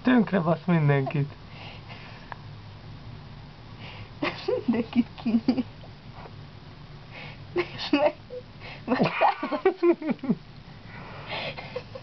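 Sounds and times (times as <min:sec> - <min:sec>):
man speaking: 0:00.0 - 0:01.4
low steady hum: 0:00.0 - 0:12.0.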